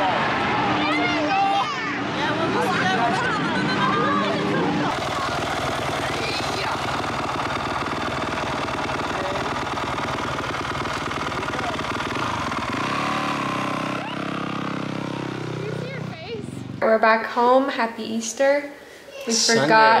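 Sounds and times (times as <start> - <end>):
motocross engine at low revs: 4.8 - 16.8.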